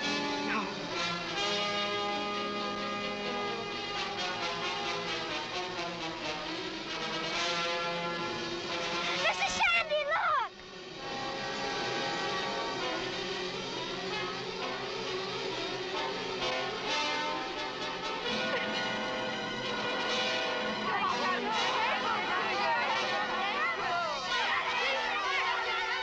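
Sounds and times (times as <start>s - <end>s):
dramatic orchestral music with brass: 0.1s - 9.3s.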